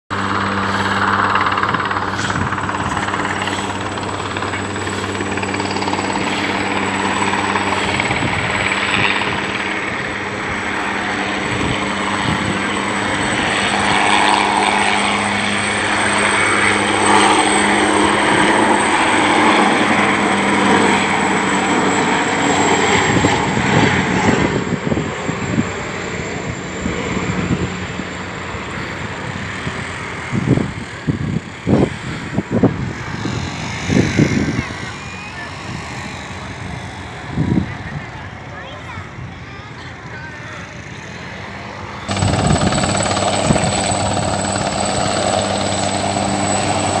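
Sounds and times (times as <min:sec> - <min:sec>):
helicopter rotor drone: 0:00.1 - 0:47.0
high turbine whine: 0:00.1 - 0:47.0.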